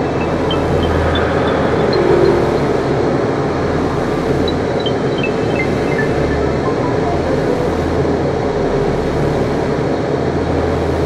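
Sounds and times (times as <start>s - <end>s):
low drone: 0.0s - 5.5s
echoed high bleeps: 0.0s - 8.0s
noisy electronic wash: 0.0s - 10.6s.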